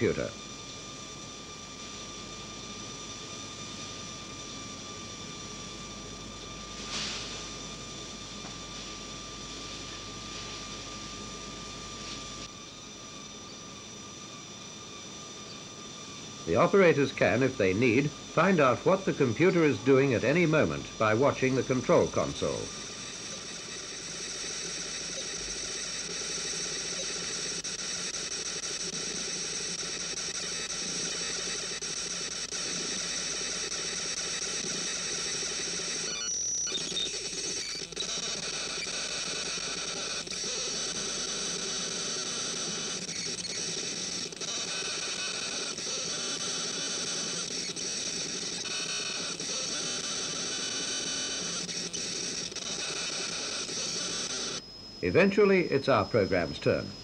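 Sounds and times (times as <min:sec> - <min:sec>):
hiss: 0:06.7 - 0:07.7
electronic tones: 0:16.5 - 0:27.5, 0:36.0 - 0:40.2, 0:48.6 - 0:57.0.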